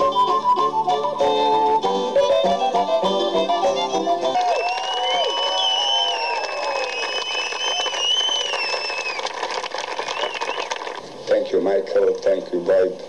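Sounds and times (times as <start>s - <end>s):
folk fiddle music: 0.0s - 4.6s
crowd applauding and cheering: 3.5s - 11.1s
long high whistle: 4.5s - 9.2s, 10.0s - 10.7s.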